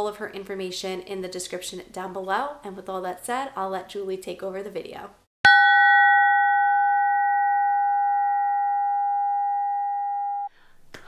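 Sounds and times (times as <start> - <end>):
bell ringing: 5.5 - 10.5.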